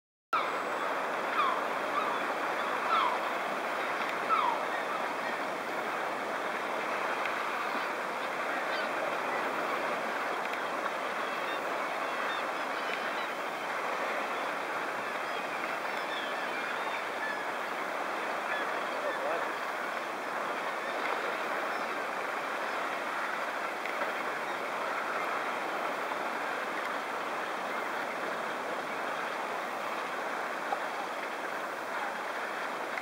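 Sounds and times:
seabird calls: 0:00.4 - 0:32.8
surf washing against rocks: 0:00.9 - 0:33.0.

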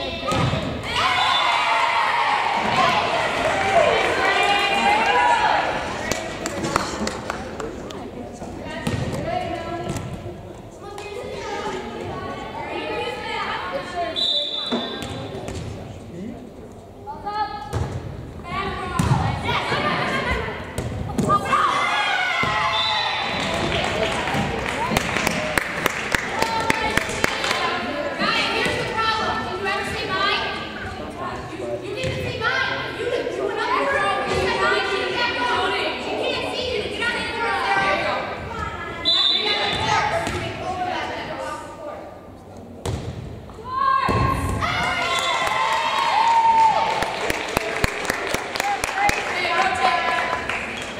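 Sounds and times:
people talking in a gym: 0:00.0 - 0:50.9
spectators chattering: 0:00.0 - 0:50.9
referee's whistle: 0:14.2 - 0:15.0, 0:39.0 - 0:39.9.

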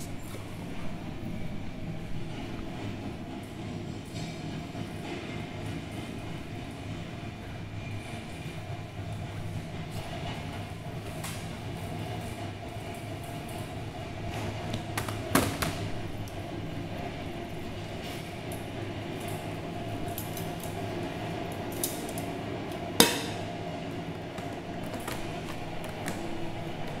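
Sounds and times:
subway train rumble: 0:00.0 - 0:27.0.

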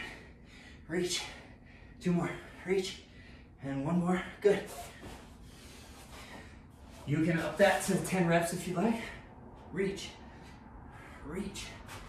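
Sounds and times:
man breathing: 0:00.0 - 0:12.0.

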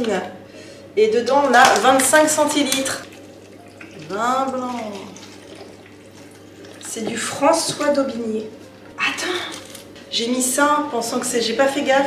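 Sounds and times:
liquid trickling into a bowl: 0:01.7 - 0:07.3.

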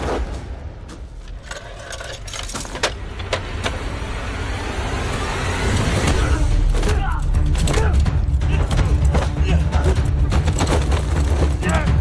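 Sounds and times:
handcuffs clicking and rattling: 0:01.3 - 0:03.0.

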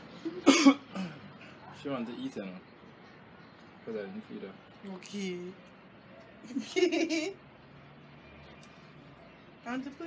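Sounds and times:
person coughing: 0:00.4 - 0:01.2.

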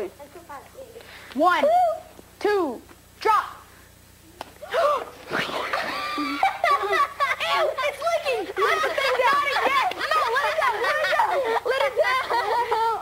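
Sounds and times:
children squealing and giggling: 0:04.6 - 0:13.0.

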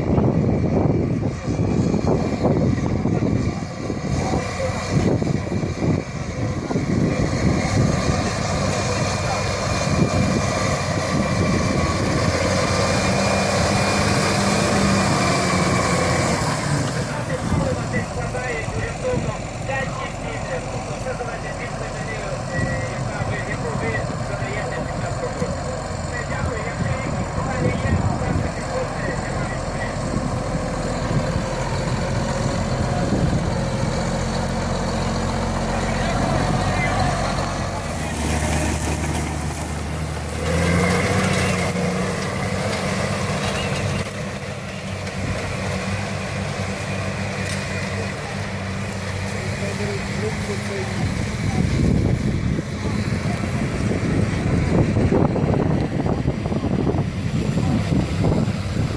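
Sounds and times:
tractor diesel engine running: 0:00.0 - 0:58.9.

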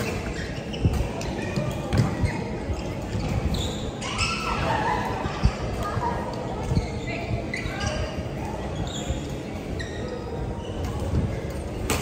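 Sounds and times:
shoes squeaking on floor: 0:00.0 - 0:04.9, 0:06.4 - 0:11.5
hubbub of voices: 0:00.0 - 0:12.0.

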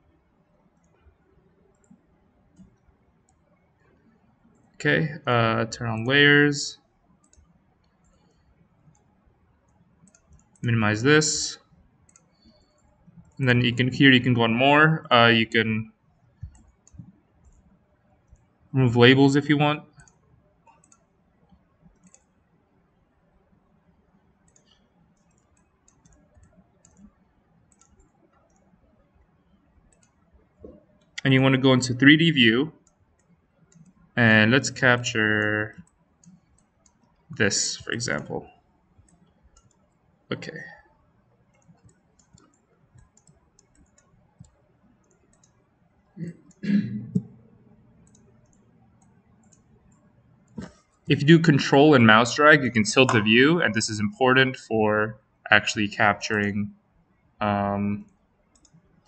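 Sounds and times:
computer mouse clicks: 0:00.7 - 0:04.8, 0:06.8 - 0:10.7, 0:11.6 - 0:13.4, 0:16.0 - 0:18.6, 0:19.9 - 0:31.3, 0:32.8 - 0:34.2, 0:34.8 - 0:51.1, 0:58.0 - 0:59.0.

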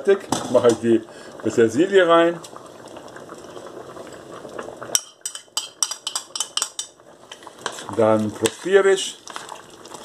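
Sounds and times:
stew simmering: 0:00.0 - 0:10.0
metal spoon clinking against pot: 0:05.0 - 0:07.0.

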